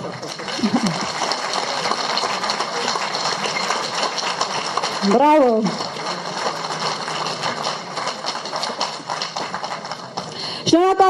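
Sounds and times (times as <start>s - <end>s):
audience applauding: 0.0s - 10.5s.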